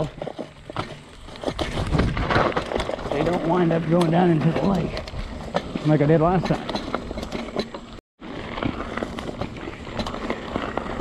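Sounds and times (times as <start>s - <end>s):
bike rattles and clicks: 0.0s - 11.0s
bike tyres rumbling on dirt: 0.0s - 11.0s.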